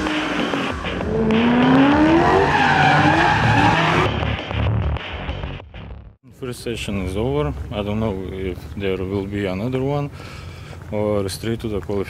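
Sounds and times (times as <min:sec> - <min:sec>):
car engine revving: 0:00.0 - 0:04.9.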